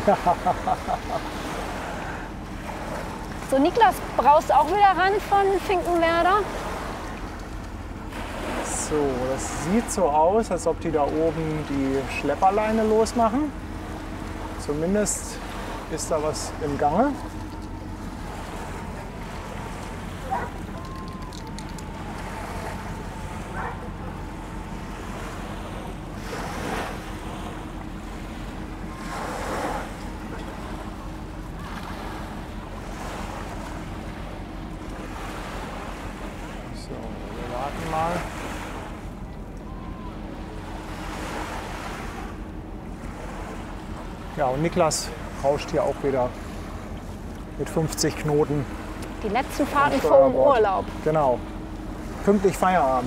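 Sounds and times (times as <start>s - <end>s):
small waves washing ashore: 0.0s - 53.0s
steady low hum: 0.0s - 53.0s.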